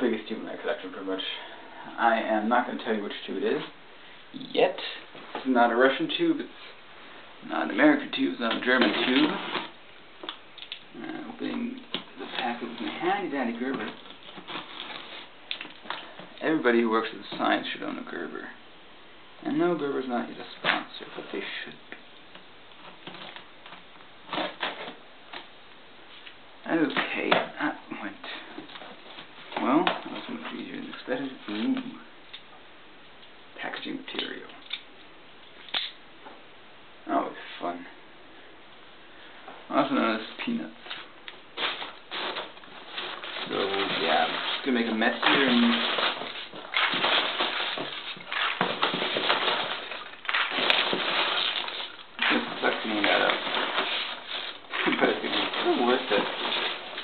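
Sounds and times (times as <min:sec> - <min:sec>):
packing peanuts rustling: 0:07.6 - 0:17.8, 0:40.0 - 0:57.0
packing peanuts spilling onto wooden floor: 0:40.8 - 0:57.0.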